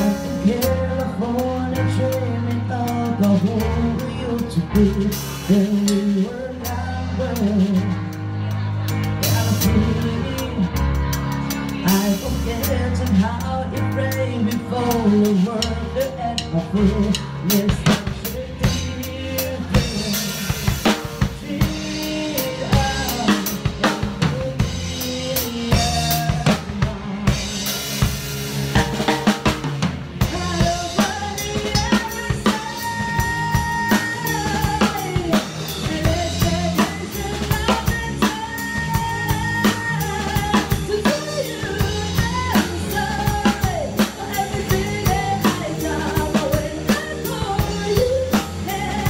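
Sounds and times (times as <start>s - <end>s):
drum kit beat: 0.0s - 49.0s
live band playing: 0.0s - 49.0s.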